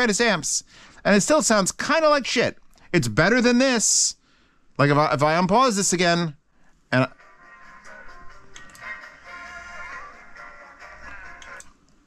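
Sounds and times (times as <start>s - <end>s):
song playing through speakers: 7.1s - 11.7s.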